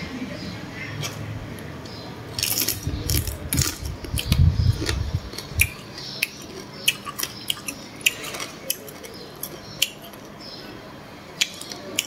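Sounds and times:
crab shell crunching while chewing: 2.4 - 10.3.

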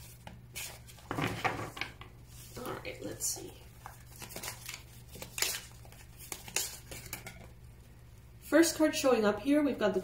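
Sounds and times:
cards being shuffled: 0.0 - 7.6.

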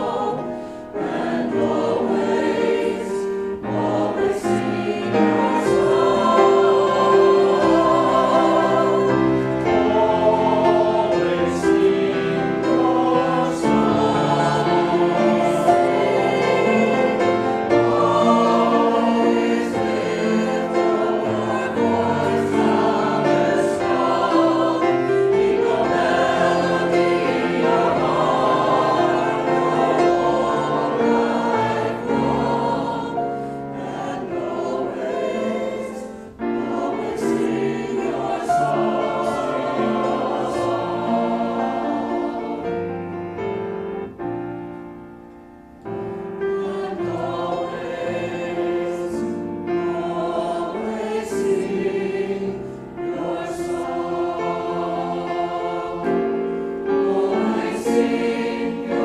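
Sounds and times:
mixed choir singing: 0.0 - 44.2, 45.9 - 59.0.

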